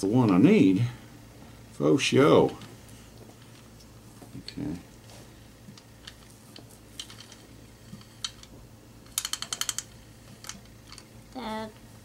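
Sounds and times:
valve spring compressor clicks: 9.1s - 11.0s.

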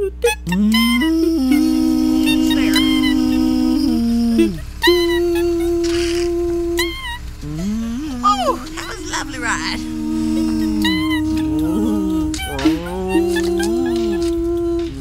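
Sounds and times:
woman groaning with effort: 7.6s - 9.9s.

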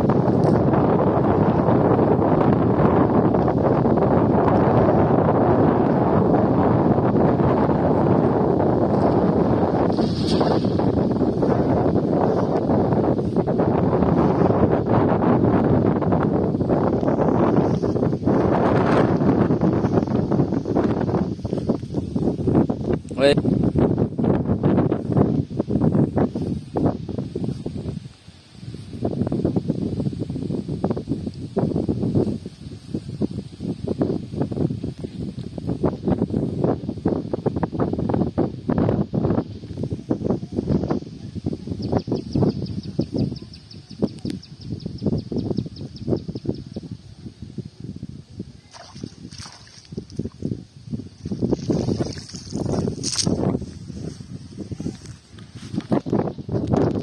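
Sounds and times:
gusty wind on microphone: 0.0s - 57.0s.

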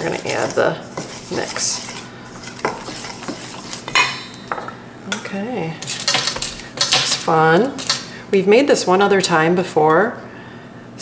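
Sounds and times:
metal spoon scraping a steel bowl: 0.0s - 4.7s, 5.8s - 8.1s.

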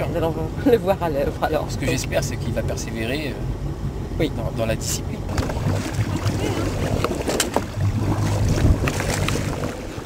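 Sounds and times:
motorboat engine idling: 0.0s - 10.0s
water splashing: 5.3s - 10.0s
wind on microphone: 5.3s - 10.0s.

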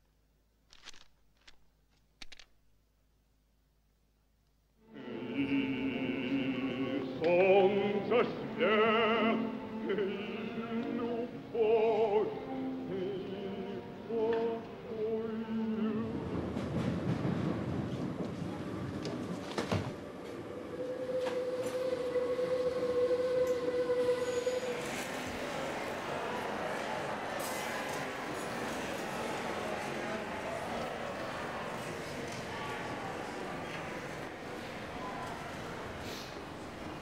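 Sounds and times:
train rushing rumble: 15.6s - 32.2s.

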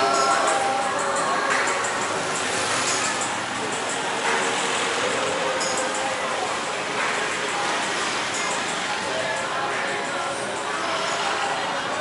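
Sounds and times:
traffic din: 0.0s - 12.0s.

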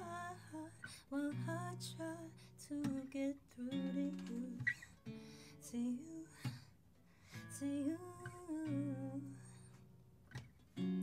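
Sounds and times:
acoustic guitar chord strummed: 0.0s - 11.0s.

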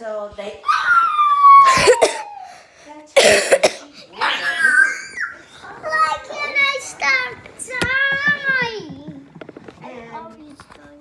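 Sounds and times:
person coughing: 1.7s - 2.3s, 3.2s - 3.9s.

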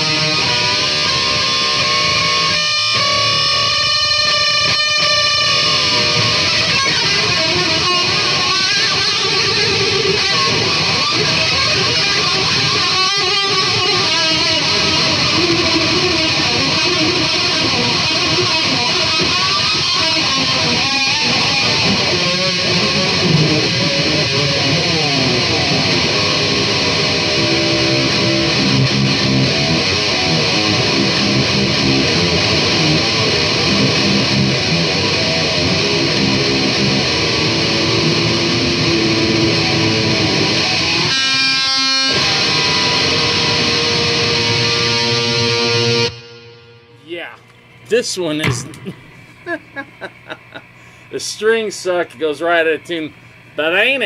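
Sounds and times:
electric guitar playing solo: 0.0s - 47.0s.

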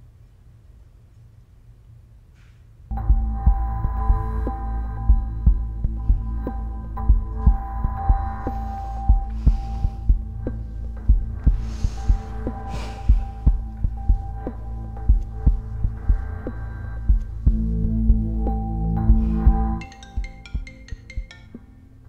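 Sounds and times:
low pulse beating: 2.9s - 21.6s
steady held tones: 2.9s - 22.0s.

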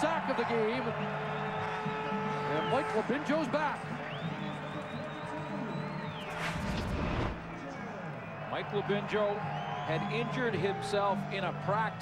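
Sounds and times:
stadium crowd noise: 0.0s - 12.0s
broadcast transition whoosh: 6.3s - 7.4s.

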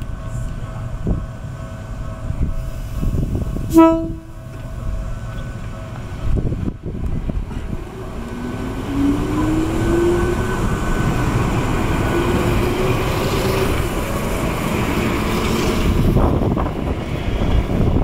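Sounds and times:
train wheels rolling: 0.0s - 18.0s.

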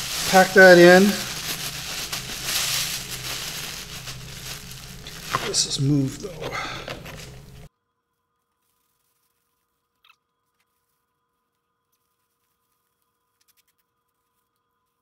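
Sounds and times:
plastic bag crinkling: 0.0s - 7.7s.

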